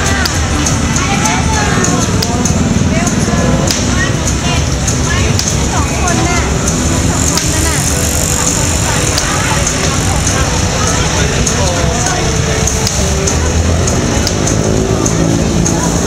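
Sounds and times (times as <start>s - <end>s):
motorbikes and cars passing: 0.0s - 16.0s
people chattering: 0.0s - 16.0s
firecracker pops: 3.6s - 4.1s.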